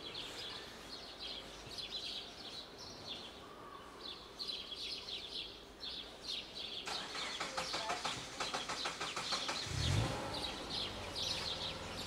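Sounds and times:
small birds chirping: 0.0s - 12.0s
quick sharp clicks: 6.9s - 9.7s.

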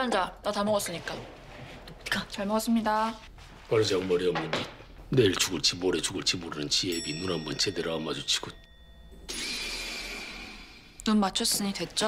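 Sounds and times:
high steady ringing tone: 6.6s - 11.0s.

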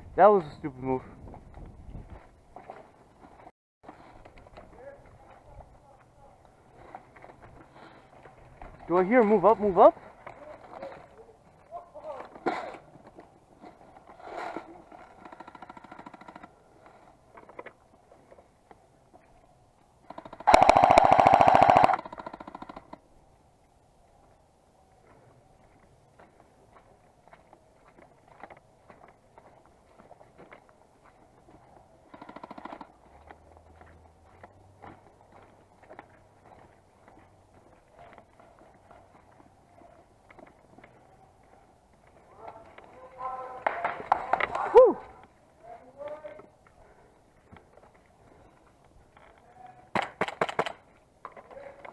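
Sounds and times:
airsoft gun full-auto burst: 20.1s - 22.9s.

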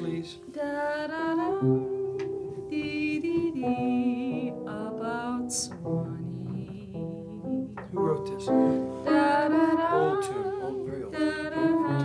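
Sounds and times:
voices singing a cappella harmony: 2.8s - 12.0s.

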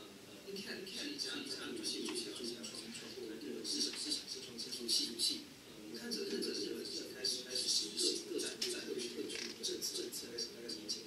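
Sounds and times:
man talking through loudspeakers: 0.0s - 11.0s.

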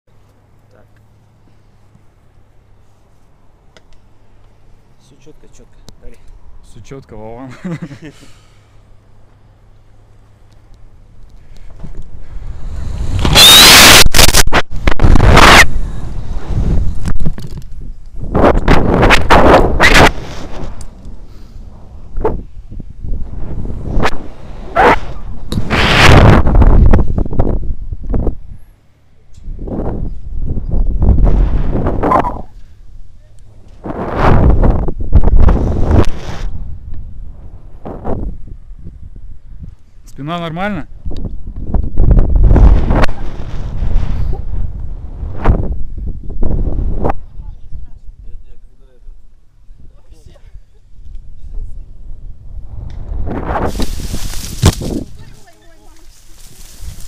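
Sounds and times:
wind buffeting microphone: 11.6s - 28.7s, 29.4s - 40.0s, 40.9s - 48.5s, 50.9s - 57.0s.

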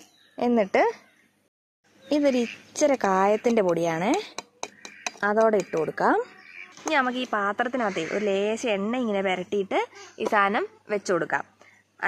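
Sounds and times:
steel sieve tapping plastic jar: 3.4s - 6.0s.

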